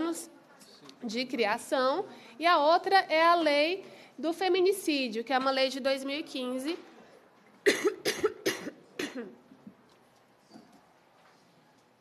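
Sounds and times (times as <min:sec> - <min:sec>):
woman coughing: 0:07.6 - 0:09.4.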